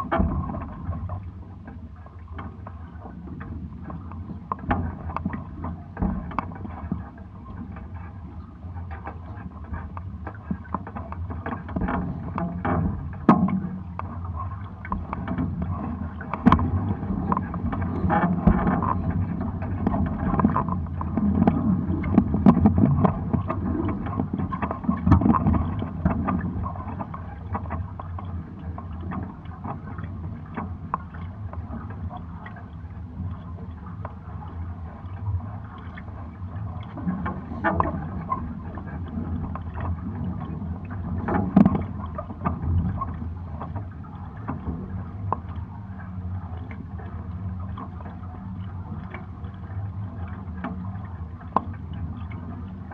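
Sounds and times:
water splashing against hulls: 0.0 - 52.9.

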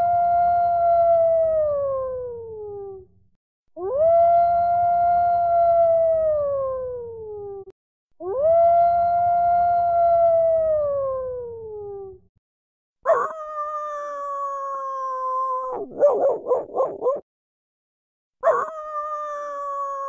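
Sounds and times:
dog howling: 13.1 - 17.2, 18.4 - 20.0.

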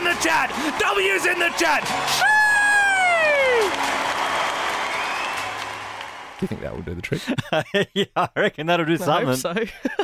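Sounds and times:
applause: 0.0 - 7.0.

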